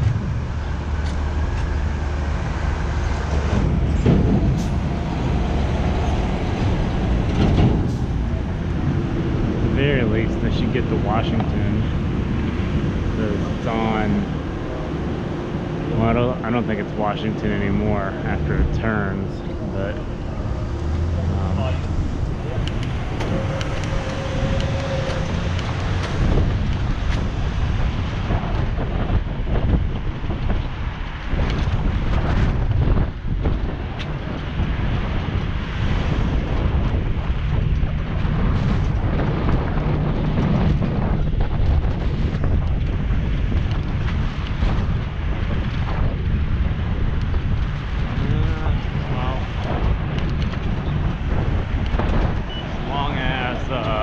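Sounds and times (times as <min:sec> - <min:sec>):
car traffic: 0:00.0 - 0:54.0
wind buffeting microphone: 0:00.0 - 0:54.0.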